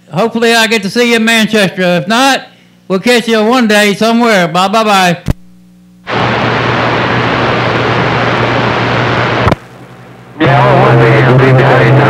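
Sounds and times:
radio click: 0:05.2 - 0:05.5, 0:09.4 - 0:09.8
radio static hiss: 0:05.2 - 0:12.0
low hum: 0:05.3 - 0:12.0.

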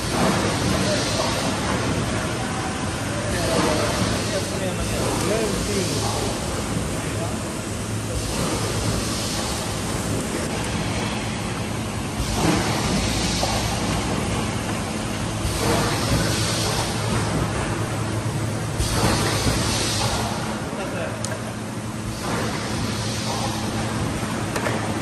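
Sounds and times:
packing line machinery running: 0:00.0 - 0:25.0.

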